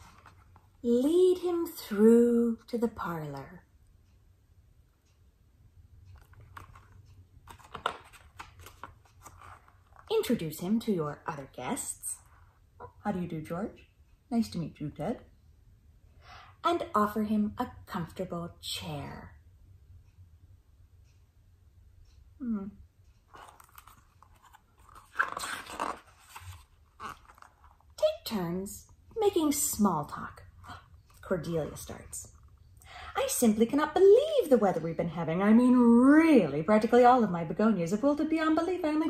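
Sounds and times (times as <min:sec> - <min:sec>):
paper page rustling and turning: 0:00.0 - 0:00.7, 0:06.1 - 0:10.1, 0:23.3 - 0:28.0.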